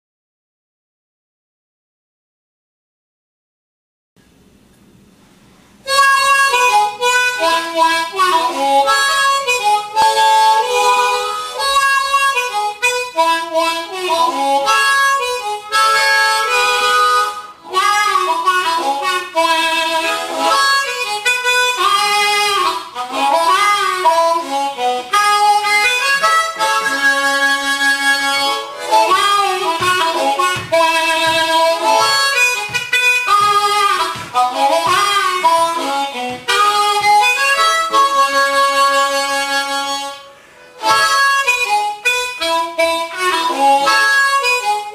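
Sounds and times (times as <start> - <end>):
blues harmonica: 5.8 - 44.9.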